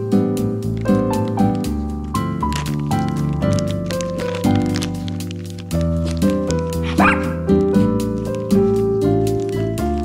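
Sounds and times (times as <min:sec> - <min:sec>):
piano music: 0:00.0 - 0:10.0
small dog yipping: 0:06.8 - 0:07.5.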